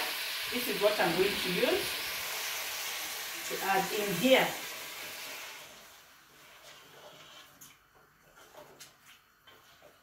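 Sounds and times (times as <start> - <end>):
chicken sizzling in a pot: 0.0 - 7.2.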